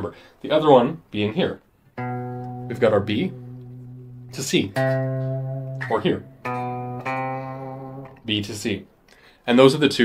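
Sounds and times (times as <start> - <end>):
guitar single notes ringing: 2.0 - 8.3.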